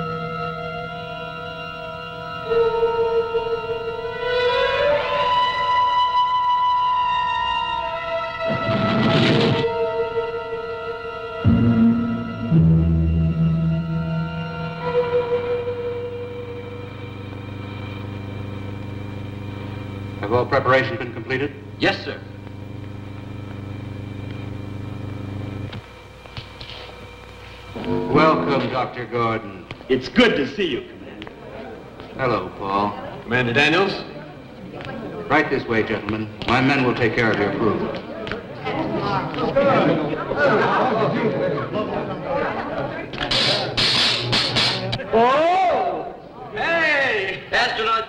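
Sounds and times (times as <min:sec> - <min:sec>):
film score held tones: 0:09.8 - 0:38.5
low steady hum: 0:11.5 - 0:37.8
short blips: 0:21.2 - 0:28.8.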